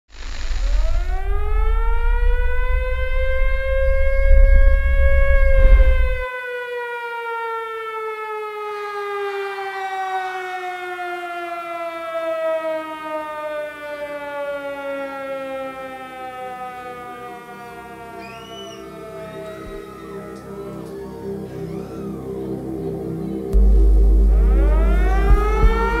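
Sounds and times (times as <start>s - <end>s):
heavy low rumble: 0.5s - 6.2s, 23.5s - 26.0s.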